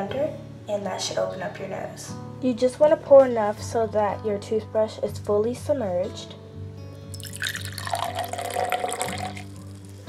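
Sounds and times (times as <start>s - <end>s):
background music: 0.0s - 10.0s
liquid poured into glass: 7.1s - 10.0s.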